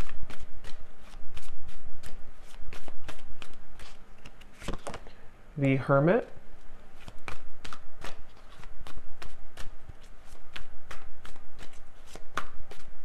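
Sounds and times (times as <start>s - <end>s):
cards being shuffled: 0.0s - 5.1s, 6.6s - 13.0s.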